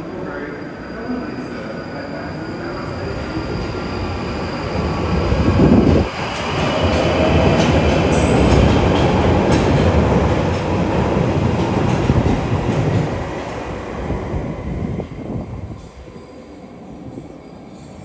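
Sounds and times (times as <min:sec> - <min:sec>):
train wheel and rail rumble: 0:00.0 - 0:18.0.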